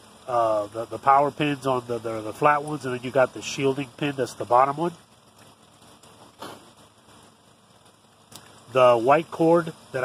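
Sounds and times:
faint outdoor noise: 0:00.0 - 0:10.0.

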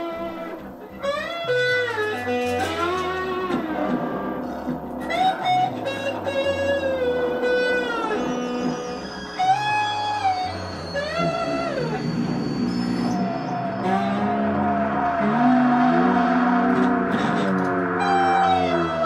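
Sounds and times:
guitar with bending notes: 0:00.0 - 0:19.0
steady low bass line: 0:00.0 - 0:19.0.

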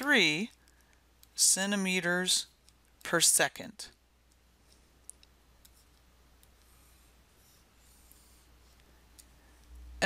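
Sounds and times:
stylus clicking and scratching on tablet: 0:02.5 - 0:03.2, 0:03.9 - 0:09.8.

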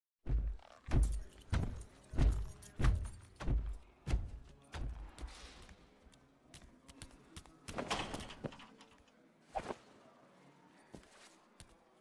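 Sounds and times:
heavy footsteps: 0:00.2 - 0:05.8.

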